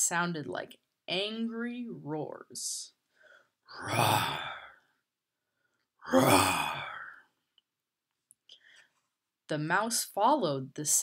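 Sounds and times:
person imitating lion roar: 3.7s - 4.6s, 6.0s - 7.2s.

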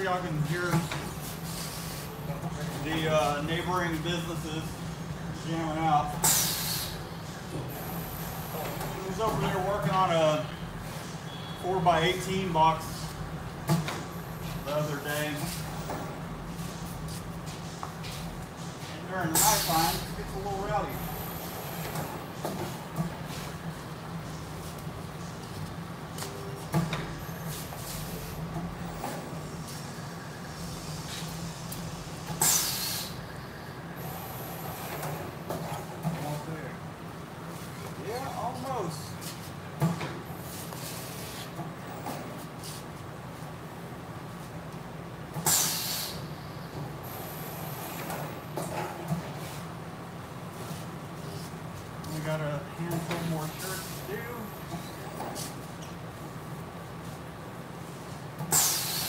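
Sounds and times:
steady low hum: 0.0s - 59.0s
loud hissing bursts: 6.2s - 7.1s, 19.3s - 20.3s, 29.9s - 33.4s, 45.4s - 46.3s, 58.5s - 59.0s.

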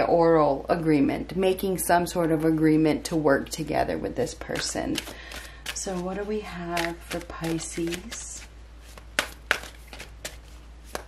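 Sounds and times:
cards being shuffled: 4.5s - 11.0s
cards slapping onto pile: 8.9s - 11.0s.

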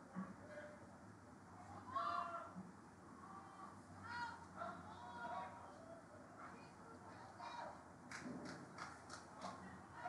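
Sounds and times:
distant high-pitched shouts: 1.6s - 2.6s, 3.2s - 7.8s.

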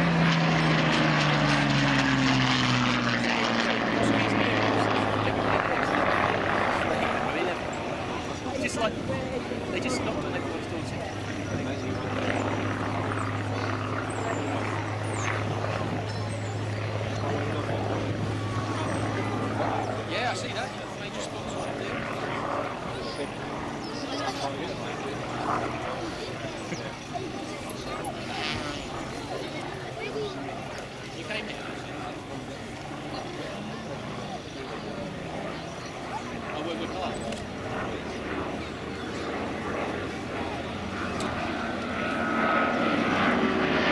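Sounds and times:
faint voices: 0.0s - 43.9s
propeller plane flying overhead: 0.0s - 43.9s.

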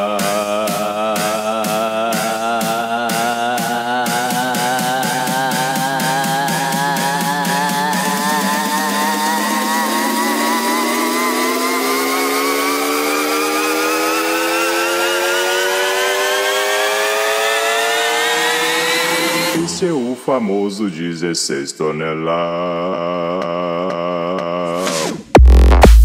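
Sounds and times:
buzzy synth riser: 6.8s - 20.0s.

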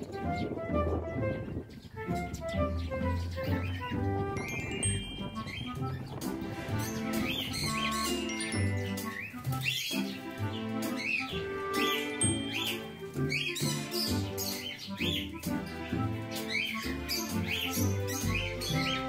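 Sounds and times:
background music with bass line: 0.0s - 19.0s
bird chirps: 1.4s - 19.0s.

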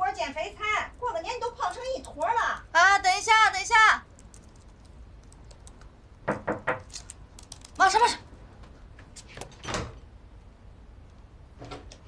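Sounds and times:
typing on laptop keyboard: 4.0s - 6.0s, 6.7s - 8.1s.

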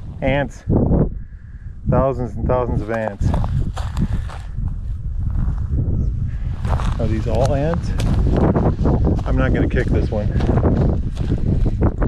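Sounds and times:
steady low rumble: 0.0s - 12.0s
footsteps on dry grass: 2.8s - 5.7s, 6.4s - 12.0s.

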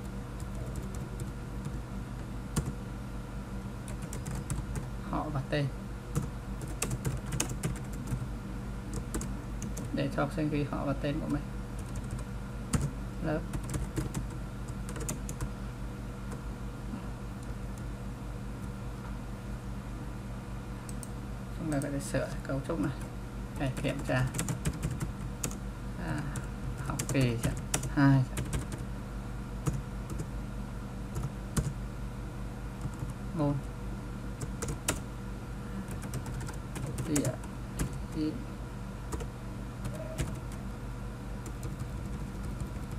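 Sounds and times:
computer keyboard typing: 0.0s - 1.8s, 2.5s - 2.8s, 3.9s - 4.9s, 6.2s - 8.2s, 8.9s - 10.0s, 11.8s - 12.9s, 13.5s - 15.5s, 23.6s - 25.6s, 26.4s - 28.8s, 29.6s - 30.3s, 31.2s - 31.8s, 32.8s - 33.2s, 34.4s - 35.0s, 35.9s - 38.3s, 39.1s - 40.6s, 41.4s - 42.9s
low electrical hum: 0.0s - 42.9s
keyboard keystrokes: 39.1s - 40.6s.

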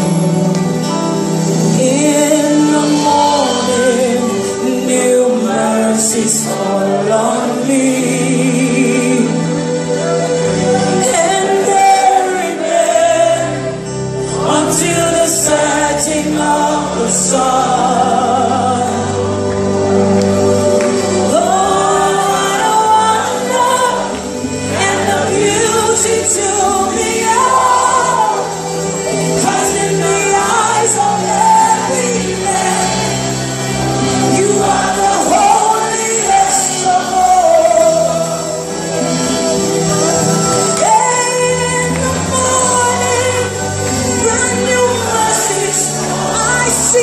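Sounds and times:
band with electric guitars and keyboard: 0.0s - 47.0s
voices singing gospel song: 0.0s - 47.0s.

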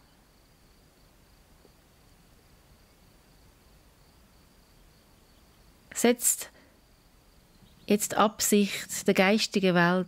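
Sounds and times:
faint room hiss: 0.0s - 10.0s
woman speaking: 5.9s - 6.5s, 7.9s - 10.0s.

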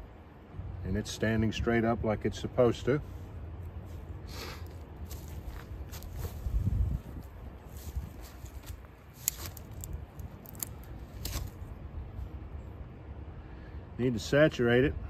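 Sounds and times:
wind buffeting microphone: 5.4s - 8.9s.

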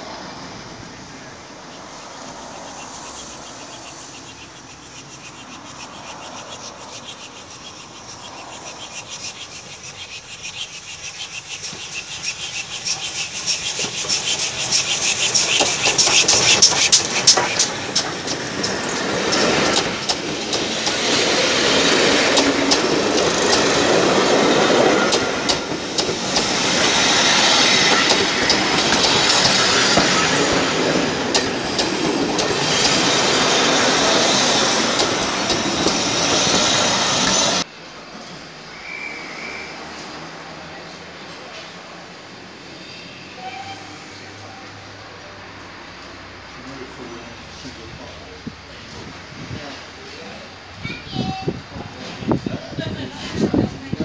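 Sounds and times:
steam train rumbling past: 0.0s - 4.6s, 11.0s - 48.3s.

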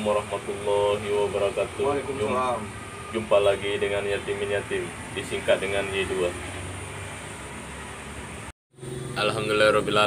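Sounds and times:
steady outdoor background hiss: 0.0s - 10.0s.

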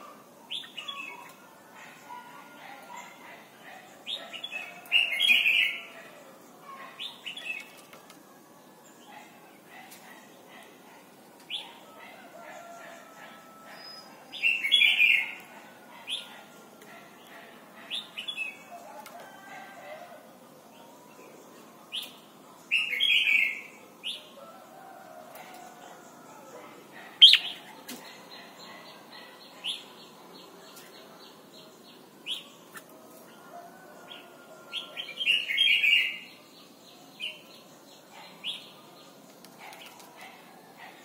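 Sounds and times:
bulbul singing: 27.2s - 27.7s.

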